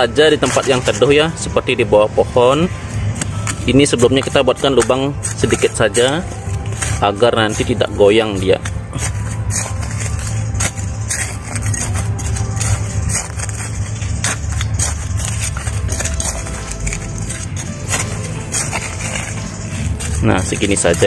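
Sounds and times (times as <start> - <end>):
background music: 0.0 - 21.0
metal trowel scraping soil: 0.0 - 21.0
steady low rumble: 1.1 - 21.0.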